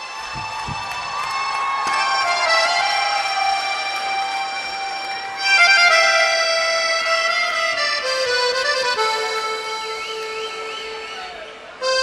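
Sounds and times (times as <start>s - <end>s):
accordion sustained chord: 2.1s - 12.0s.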